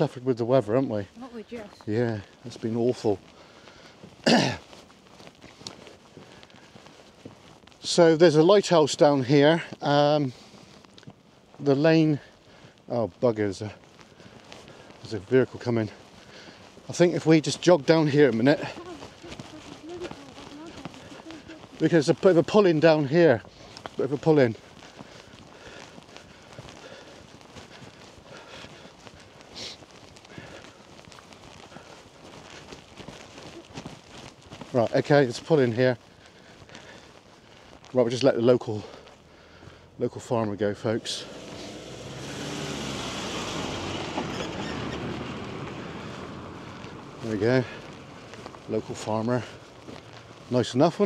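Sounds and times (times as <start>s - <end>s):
footsteps jogging on tarmac: 0.0s - 51.0s
faint voice: 18.6s - 21.8s
pickup truck passing: 40.6s - 48.7s.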